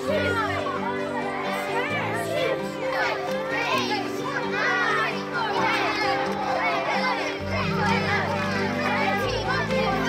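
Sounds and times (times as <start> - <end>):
children shouting and chattering: 0.0 - 10.0.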